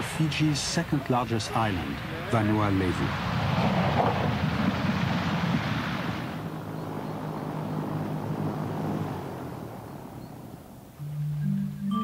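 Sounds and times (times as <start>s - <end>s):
propeller engines rushing: 0.0s - 11.9s
engine hum: 0.0s - 12.0s.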